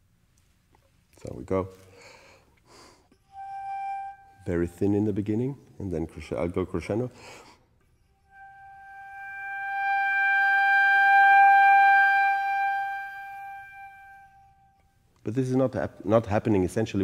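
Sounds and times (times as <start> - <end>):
flute holding a high note: 3.2 - 5.2, 8.2 - 14.9.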